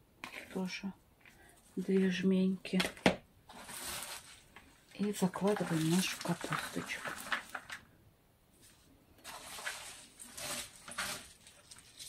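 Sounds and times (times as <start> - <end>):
hands mixing cabbage in a bucket: 3.5 - 7.8, 9.2 - 11.9.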